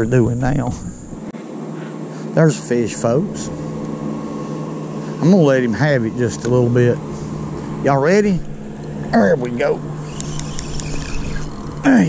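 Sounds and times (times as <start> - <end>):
outboard motor idling: 2.2 - 12.0
fishing reel clicks: 10.1 - 11.8.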